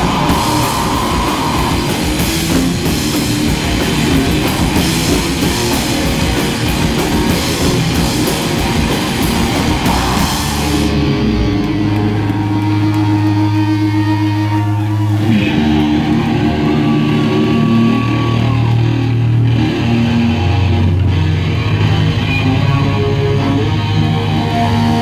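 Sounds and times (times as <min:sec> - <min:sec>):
drums and cymbals crashing: 0:00.0 - 0:13.3
bass guitar notes: 0:00.0 - 0:25.0
ringing electric guitar notes: 0:00.0 - 0:25.0.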